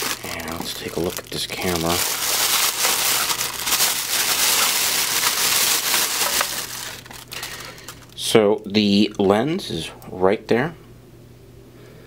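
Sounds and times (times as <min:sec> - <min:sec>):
plastic bag crinkling: 0:00.0 - 0:08.3.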